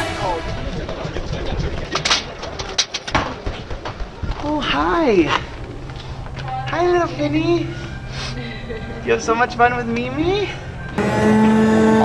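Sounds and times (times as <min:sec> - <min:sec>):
faint crowd chatter: 0:00.0 - 0:04.6.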